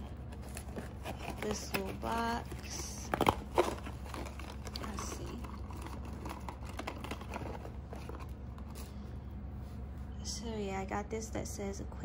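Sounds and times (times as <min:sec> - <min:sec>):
low room hum: 0:00.0 - 0:12.0
cardboard box rustling: 0:00.1 - 0:08.9.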